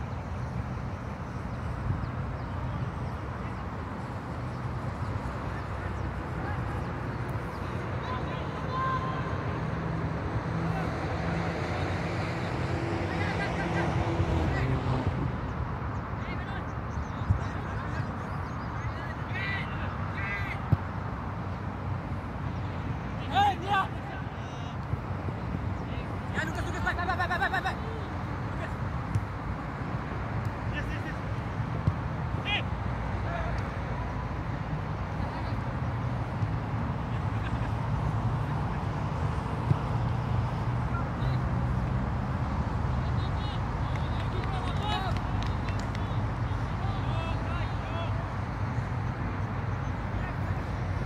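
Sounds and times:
distant shouting voices: 0:02.3 - 0:15.5, 0:16.2 - 0:20.9, 0:22.1 - 0:51.0.

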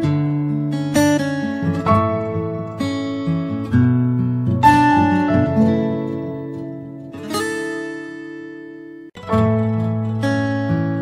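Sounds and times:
acoustic guitar chord strummed: 0:00.0 - 0:11.0.

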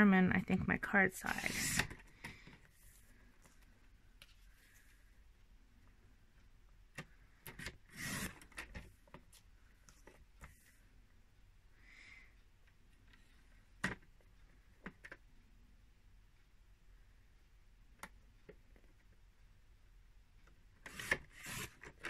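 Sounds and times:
paper trimmer sliding scrape: 0:01.4 - 0:02.0, 0:07.9 - 0:08.4.

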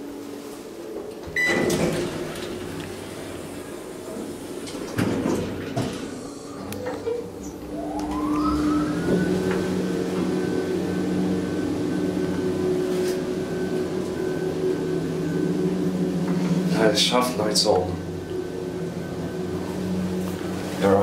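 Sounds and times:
elevator whine: 0:00.0 - 0:21.0
low hum: 0:05.9 - 0:20.8.

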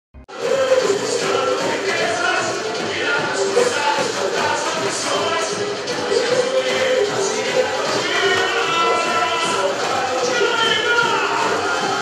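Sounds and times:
samba drum section: 0:00.3 - 0:12.0
voices singing: 0:00.3 - 0:12.0.

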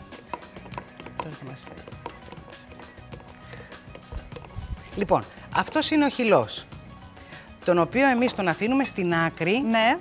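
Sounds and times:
quiet background music: 0:00.0 - 0:10.0
kitchen utensil clicks and taps: 0:00.2 - 0:04.6, 0:05.6 - 0:06.1.

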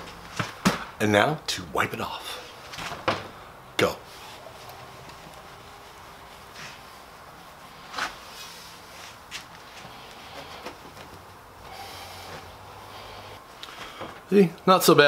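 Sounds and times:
cloth rubbing on metal: 0:04.1 - 0:13.3.

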